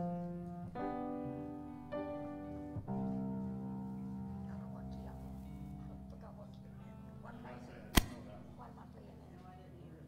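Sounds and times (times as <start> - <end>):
soft background music: 0.0 - 10.0
sharp click: 7.9 - 8.2.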